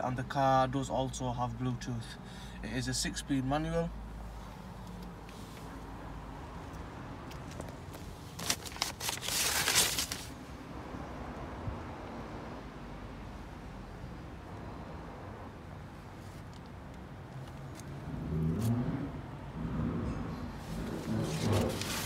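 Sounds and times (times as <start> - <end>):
rustling and crackling: 7.3 - 10.4, 20.6 - 22.0.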